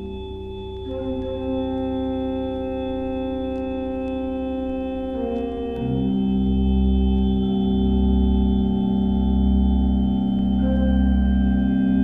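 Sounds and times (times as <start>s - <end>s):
held organ-like chord: 0.0s - 12.0s.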